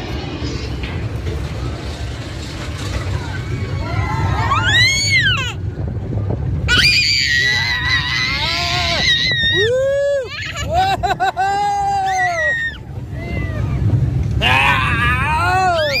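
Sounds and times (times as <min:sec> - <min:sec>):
roller coaster train rumbling: 0:00.0 - 0:16.0.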